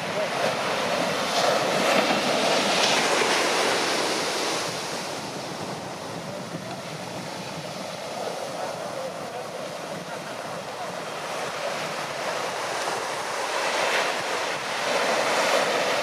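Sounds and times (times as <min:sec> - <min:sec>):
waves breaking on sand: 0:00.0 - 0:16.0.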